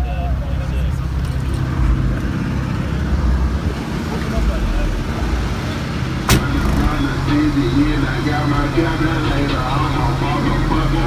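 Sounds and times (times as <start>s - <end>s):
deep subwoofer bass: 6.3s - 10.2s.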